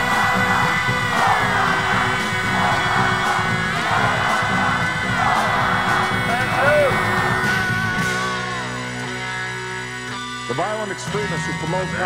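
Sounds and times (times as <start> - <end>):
steady drum beat: 0.0 - 8.9
distorted electric guitar sliding notes: 0.0 - 12.0.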